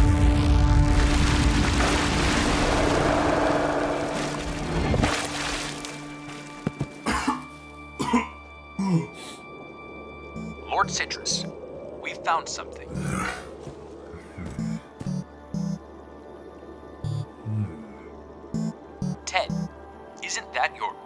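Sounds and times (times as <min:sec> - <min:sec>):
cartoon characters coughing and grunting: 0:07.0 - 0:09.1
cartoon music: 0:10.4 - 0:11.5, 0:14.5 - 0:15.8, 0:17.0 - 0:17.7, 0:18.6 - 0:19.7.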